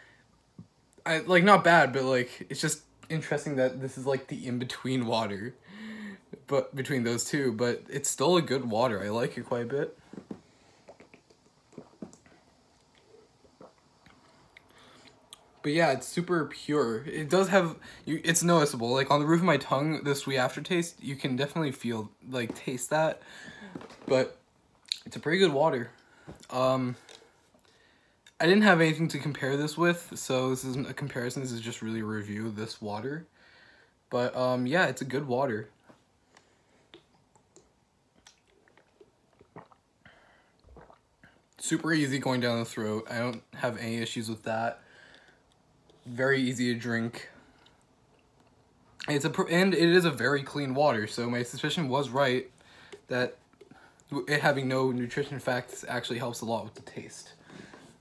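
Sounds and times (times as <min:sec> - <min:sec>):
person gulping water: 0:10.1 - 0:15.6, 0:23.5 - 0:24.1, 0:36.9 - 0:41.6.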